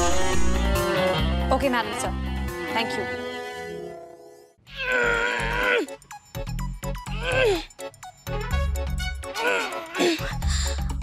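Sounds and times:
comic music with beat: 0.0s - 1.5s, 4.9s - 11.0s.

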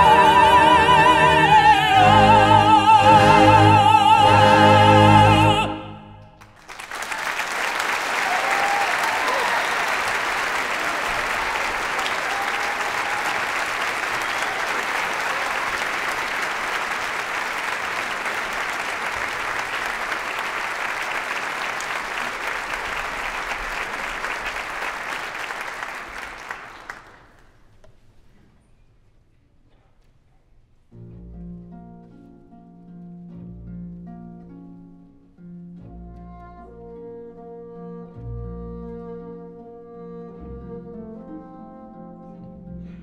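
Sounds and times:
audience applauding: 6.4s - 27.7s.

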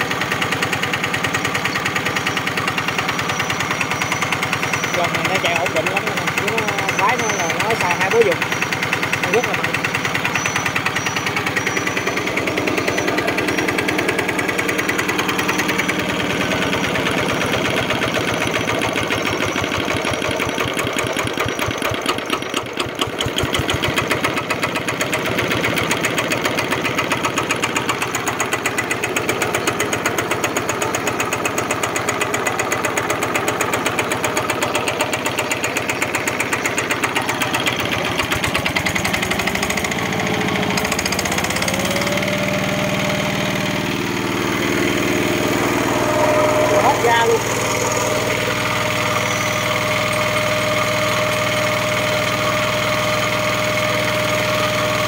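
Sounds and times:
diesel engine chugging: 0.0s - 55.0s.

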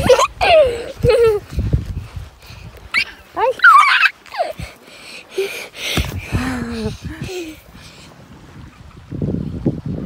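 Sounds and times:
child squealing in play: 3.0s - 4.6s.

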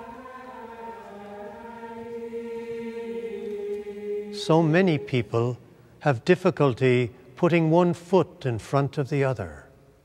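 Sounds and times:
choral music holding chords: 0.0s - 8.0s.

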